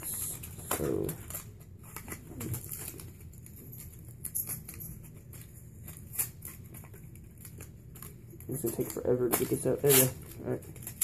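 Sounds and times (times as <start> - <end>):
low steady hum: 0.0 - 11.0
packaging clicks and rustles: 0.0 - 11.0.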